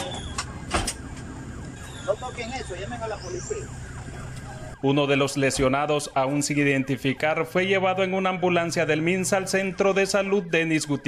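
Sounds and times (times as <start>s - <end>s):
ambulance siren: 0.0s - 11.0s.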